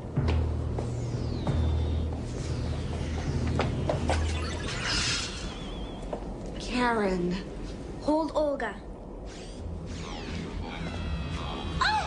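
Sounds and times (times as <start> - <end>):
electronic high tones sliding downward: 0.9 - 6.4, 9.3 - 12.0.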